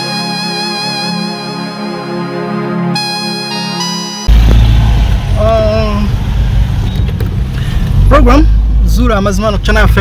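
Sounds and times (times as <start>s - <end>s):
car engine and tyres rumbling: 4.3s - 10.0s.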